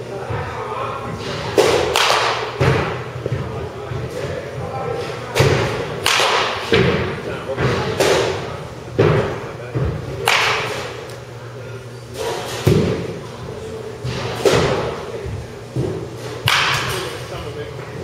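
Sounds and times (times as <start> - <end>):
balls hitting netting: 1.2 - 4.2, 5.3 - 11.1, 12.1 - 13.2, 14.0 - 15.1, 15.7 - 17.4
bat striking baseballs: 1.4 - 3.5, 5.3 - 11.2, 12.1 - 13.2, 14.0 - 15.1, 15.8 - 17.3.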